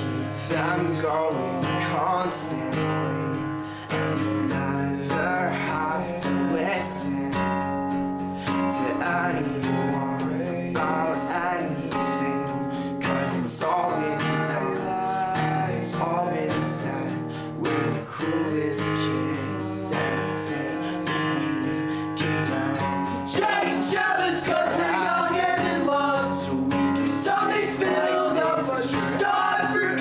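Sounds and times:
acoustic guitar strumming: 0.0 - 30.0
man singing: 0.0 - 30.0.

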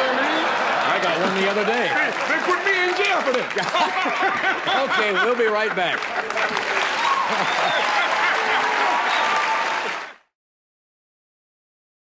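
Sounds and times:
audience laughter: 0.0 - 9.0
audience applauding: 0.0 - 10.3.

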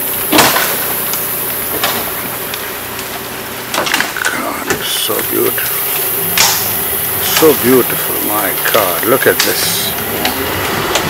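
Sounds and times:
boat motor humming: 0.0 - 11.0
plants crackling and snapping: 0.0 - 11.0.

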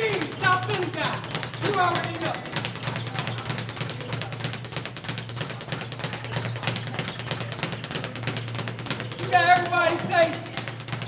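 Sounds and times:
speed bag rapid rattle: 0.0 - 11.0.

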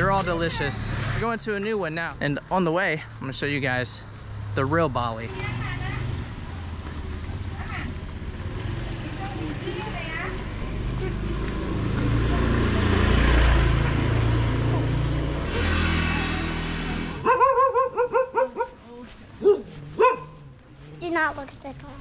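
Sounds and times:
vehicle engine running: 4.5 - 17.4
dog barking high yaps: 17.2 - 18.8, 19.4 - 20.4.

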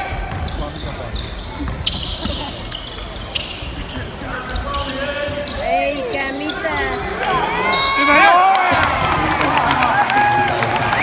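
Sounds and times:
spectators' voices: 1.4 - 11.0.

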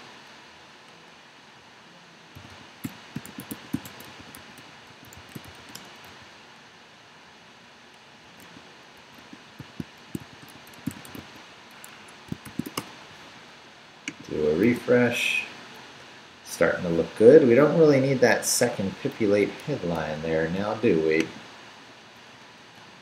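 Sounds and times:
faint hiss: 0.0 - 23.0
computer keyboard keystrokes: 2.4 - 6.2, 8.4 - 12.9.

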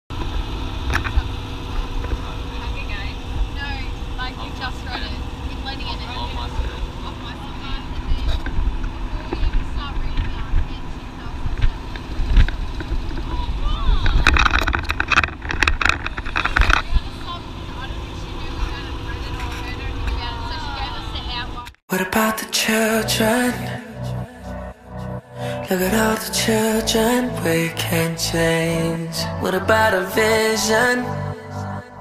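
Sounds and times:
truck engine and road rumble: 0.1 - 32.0
wind noise: 6.3 - 21.7.

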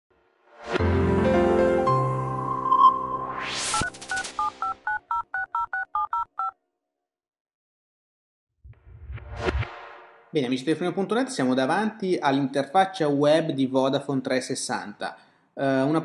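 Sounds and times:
telephone keypad tones: 3.8 - 6.6
whoosh: 8.6 - 10.4.

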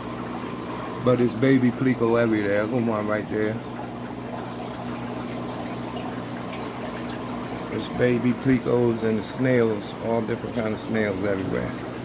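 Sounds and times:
low electrical pump hum: 0.0 - 12.0
water trickling and splashing: 0.0 - 12.0.

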